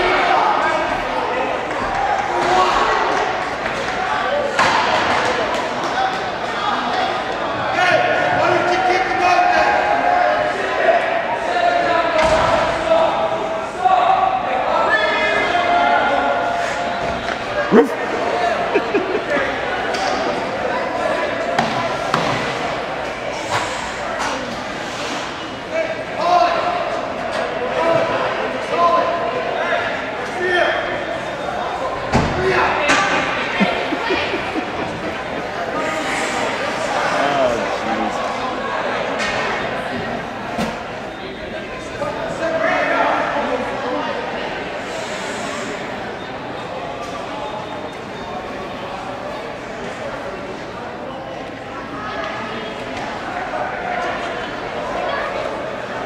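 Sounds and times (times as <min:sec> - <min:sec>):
people talking and calling: 0:16.0 - 0:56.0.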